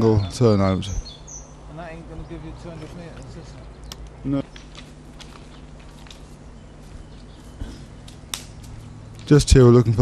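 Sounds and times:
low background noise: 0:00.0 - 0:10.0
footsteps crunching on gravel: 0:02.7 - 0:09.4.

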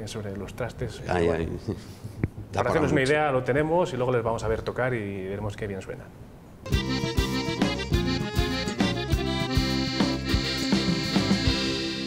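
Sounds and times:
instrumental jingle over a beat: 0:06.7 - 0:12.0.

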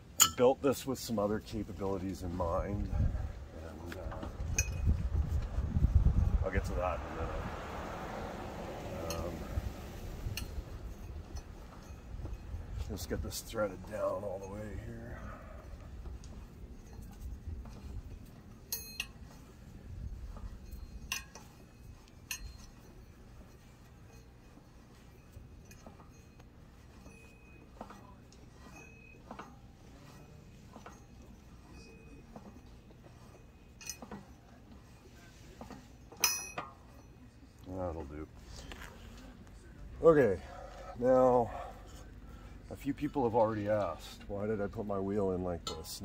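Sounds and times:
metal scraping: 0:00.0 - 0:46.0
steel-on-steel clinks: 0:00.1 - 0:03.0, 0:03.7 - 0:05.4, 0:08.3 - 0:39.8, 0:45.4 - 0:46.0.

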